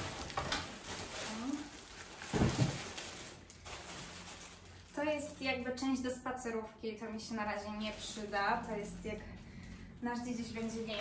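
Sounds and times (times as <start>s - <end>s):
plastic packaging rustling: 0.0s - 5.8s, 7.5s - 11.0s.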